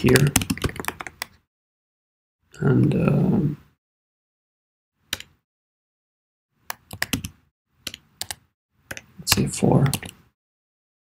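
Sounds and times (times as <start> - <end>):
keyboard keystrokes: 0.1 - 1.4, 6.7 - 10.2.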